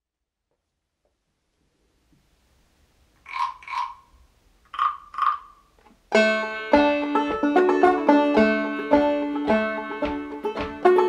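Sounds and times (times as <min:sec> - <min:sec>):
frog call croaks: 0:03.2 - 0:05.8.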